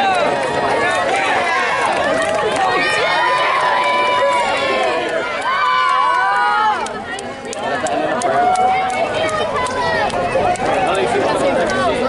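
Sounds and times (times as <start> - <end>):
crowd talking and calling out: 0.0 - 12.0.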